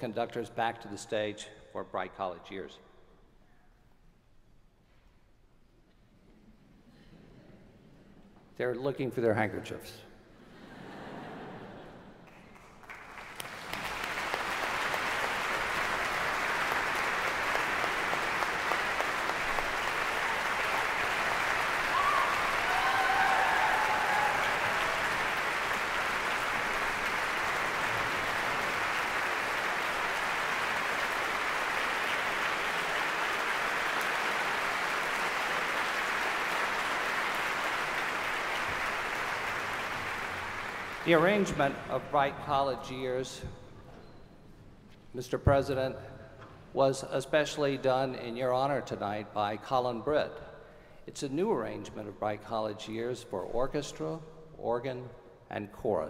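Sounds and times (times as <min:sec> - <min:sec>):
audience applauding: 0:12.2 - 0:41.9.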